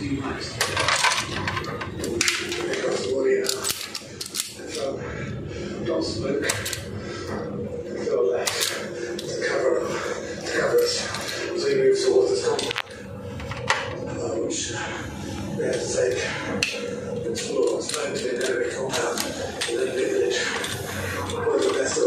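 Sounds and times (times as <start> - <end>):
man talking: 0.0 - 1.3, 2.1 - 3.9, 4.5 - 13.0, 14.1 - 22.0
hand tools clicking on metal: 17.4 - 20.0.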